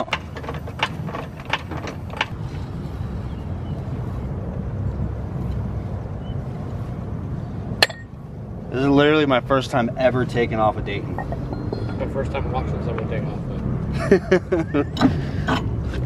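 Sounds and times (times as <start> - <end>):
wire wheel spinning rumble: 0.0 - 7.4
light metallic clinks: 11.2 - 12.1.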